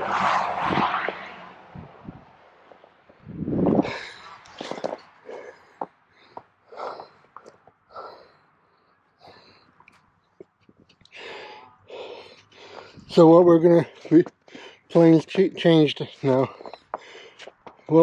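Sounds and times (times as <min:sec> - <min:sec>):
man breathing: 0:03.2 - 0:09.9, 0:11.1 - 0:13.1, 0:13.9 - 0:14.9, 0:16.5 - 0:17.9
footsteps in snow: 0:03.9 - 0:05.8.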